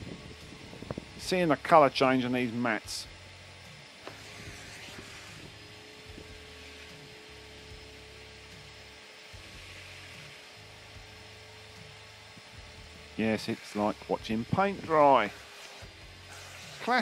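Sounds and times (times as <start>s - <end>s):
vacuum motor humming: 0.0s - 17.0s.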